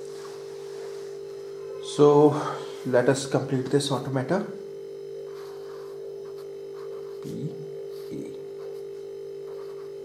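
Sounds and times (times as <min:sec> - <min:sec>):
steady hum: 0:00.0 - 0:10.0
marker scratching on a board: 0:05.3 - 0:07.4, 0:08.6 - 0:10.0.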